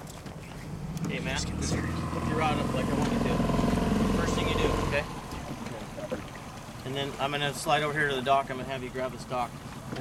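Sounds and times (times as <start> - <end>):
boat motor running: 0.0 - 10.0.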